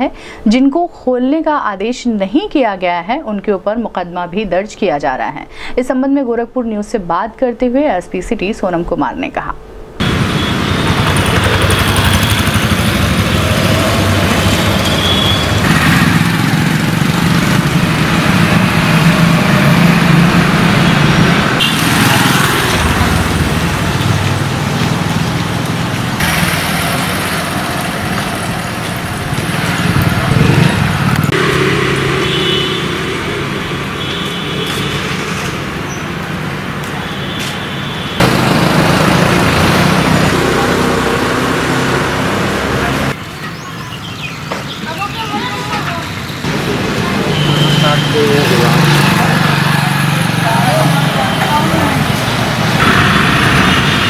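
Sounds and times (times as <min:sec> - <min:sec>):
light road traffic: 0:09.7 - 0:54.0
vehicle engines passing: 0:10.0 - 0:37.5, 0:38.2 - 0:54.0.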